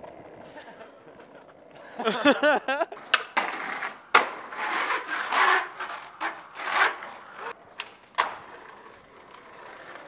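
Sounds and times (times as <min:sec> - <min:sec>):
skateboard wheels rolling on bricks: 0:00.0 - 0:10.0
skateboard landing clack: 0:03.0 - 0:04.5, 0:07.7 - 0:08.7.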